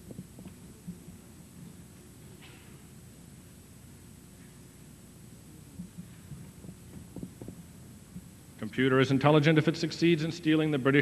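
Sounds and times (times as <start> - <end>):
footsteps on stage: 5.8 - 8.3.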